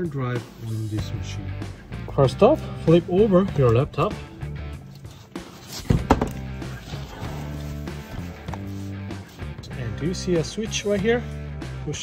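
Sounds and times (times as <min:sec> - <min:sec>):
background guitar music: 0:00.0 - 0:12.0
laptop thunking on desk: 0:05.9 - 0:06.5.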